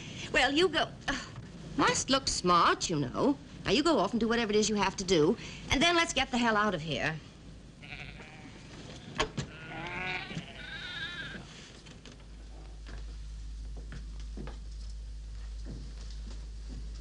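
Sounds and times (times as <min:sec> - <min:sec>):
low steady hum: 0:00.0 - 0:17.0
sheep bleating: 0:07.8 - 0:11.5.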